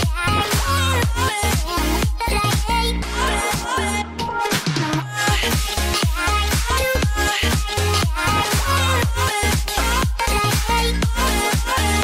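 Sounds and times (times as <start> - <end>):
dance music with kick drum: 0.0 - 12.0.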